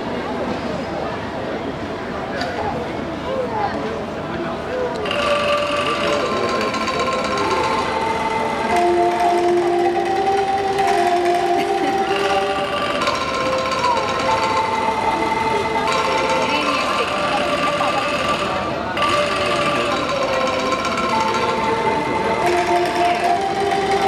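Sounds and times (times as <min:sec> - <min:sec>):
angklung ensemble playing: 0:05.0 - 0:24.0.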